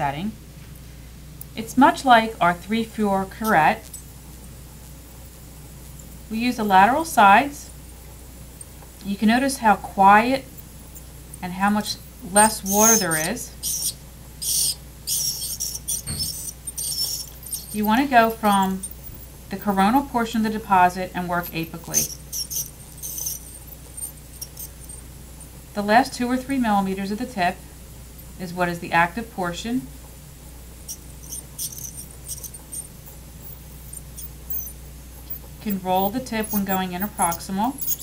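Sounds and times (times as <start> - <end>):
ultrasonic scaler buzzing: 1.2 - 38.0.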